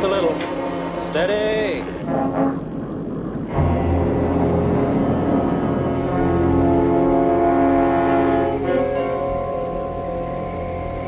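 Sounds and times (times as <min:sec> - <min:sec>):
aircraft engine drone: 0:00.0 - 0:11.0
dramatic music score: 0:00.0 - 0:11.0.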